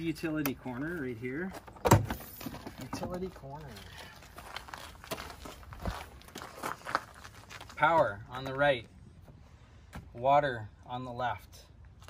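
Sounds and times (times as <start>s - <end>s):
footsteps on grass and gravel: 3.1s - 8.6s.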